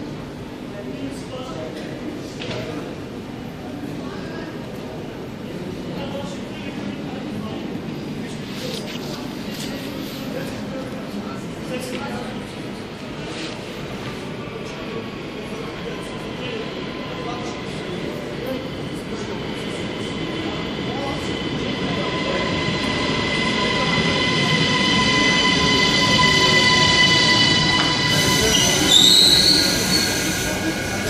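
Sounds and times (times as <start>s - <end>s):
electric train whine: 19.1s - 31.0s
high brake squeal: 23.4s - 31.0s.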